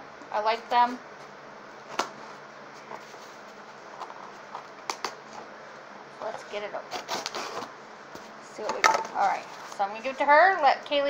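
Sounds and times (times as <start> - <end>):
cardboard scraping: 6.9 - 7.7.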